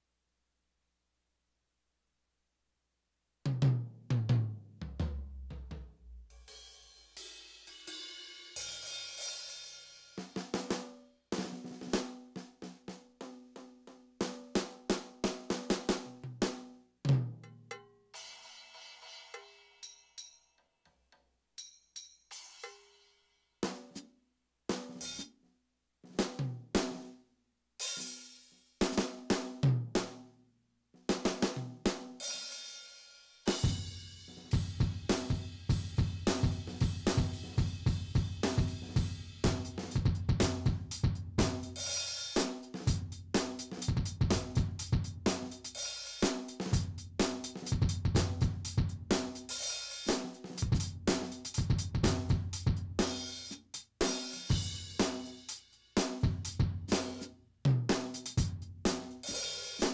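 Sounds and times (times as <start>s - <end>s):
steady rock drum beat: 3.5s - 19.8s, 24.7s - 25.3s, 26.1s - 27.1s, 27.8s - 30.2s, 31.0s - 59.9s.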